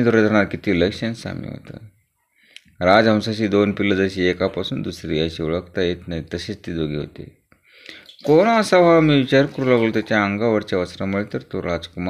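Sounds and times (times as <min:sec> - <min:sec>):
narrator reading aloud: 0:07.9 - 0:12.0.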